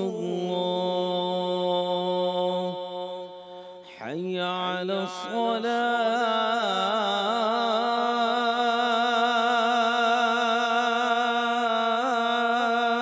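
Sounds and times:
man chanting call to prayer: 0.0 - 13.0.

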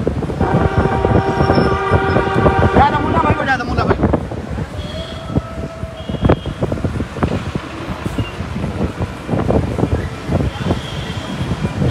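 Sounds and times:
road and traffic noise: 0.0 - 11.9
wind buffeting microphone: 0.0 - 11.9.

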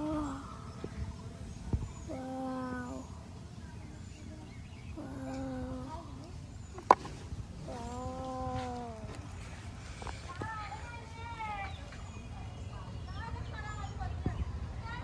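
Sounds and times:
animal calling: 2.0 - 3.2, 5.0 - 6.9, 7.6 - 9.5.

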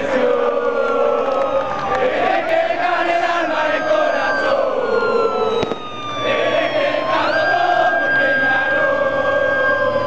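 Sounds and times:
crowd noise: 0.0 - 10.0
police siren wailing: 0.0 - 10.0.

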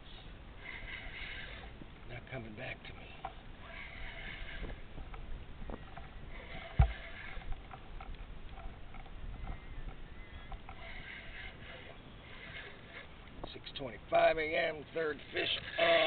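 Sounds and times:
thump against hull: 6.8 - 7.0.

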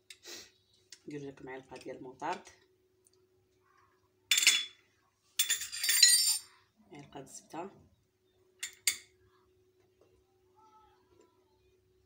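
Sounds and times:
metal spoon clinking on ceramic bowl: 8.6 - 9.1.

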